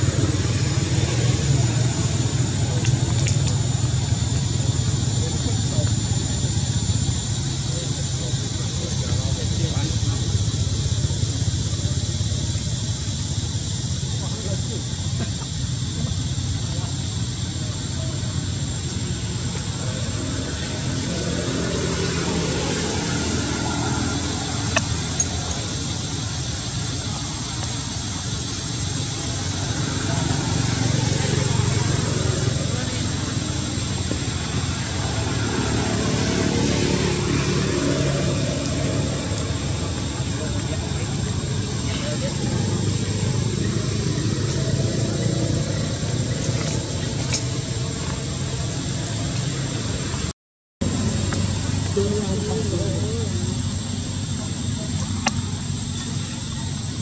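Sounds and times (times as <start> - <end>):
indistinct voices talking: 0.0 - 57.0
steady low rumble: 0.0 - 57.0.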